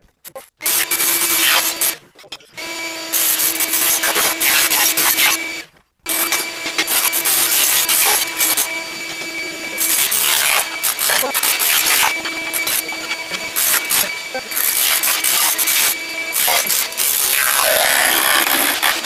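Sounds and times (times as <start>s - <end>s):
shop vacuum running: 0.6s - 2.0s, 2.6s - 19.0s
electric chipping hammer on tile: 0.6s - 19.0s
tile cracking and scraping: 9.8s - 19.0s.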